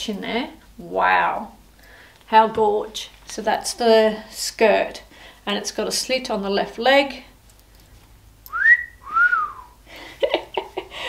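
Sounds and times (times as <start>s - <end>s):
person wolf whistling: 8.5s - 9.8s.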